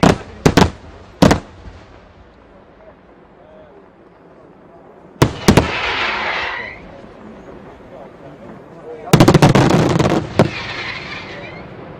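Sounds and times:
firework shell bursts: 0:05.2 - 0:06.8, 0:09.5 - 0:11.7
fireworks crackling hiss: 0:05.2 - 0:07.7, 0:09.1 - 0:11.9.

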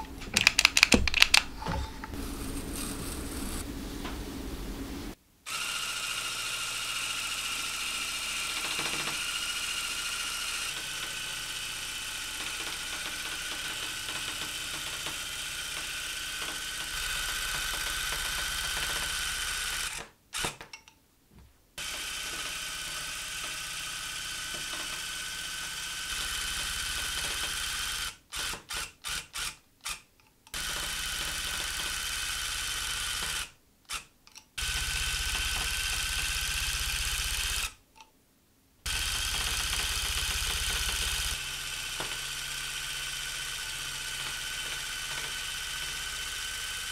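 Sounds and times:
tufting gun whirring: 0:00.0 - 0:03.6.

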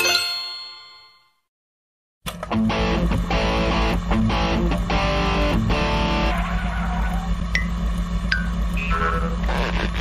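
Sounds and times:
bell-like chime ringing: 0:00.0 - 0:01.4.

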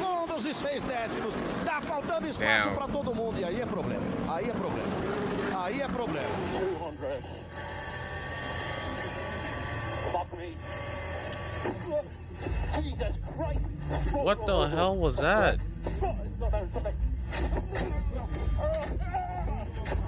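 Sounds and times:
race commentary: 0:00.0 - 0:07.5, 0:11.8 - 0:15.6.

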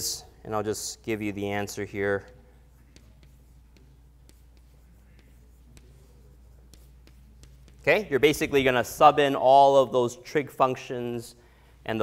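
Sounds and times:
steady low hum: 0:00.0 - 0:12.0
chalk tapping on chalkboard: 0:01.8 - 0:08.4.

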